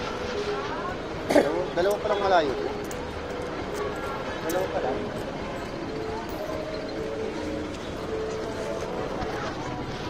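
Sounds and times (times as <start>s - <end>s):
faint voices talking: 0.0s - 10.0s
street background noise: 0.0s - 10.0s.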